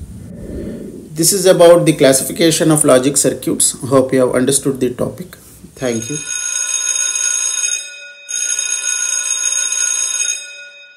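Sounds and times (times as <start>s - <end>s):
high bell ringing with trill: 5.9s - 10.9s.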